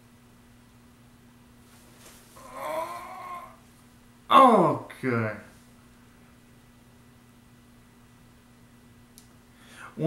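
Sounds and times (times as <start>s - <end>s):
man groaning in pain: 2.4s - 3.6s.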